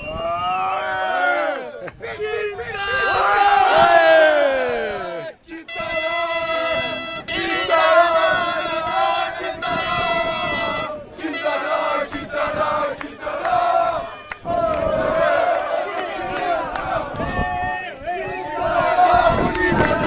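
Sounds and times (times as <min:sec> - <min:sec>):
crowd chanting in unison: 0:06.5 - 0:20.0.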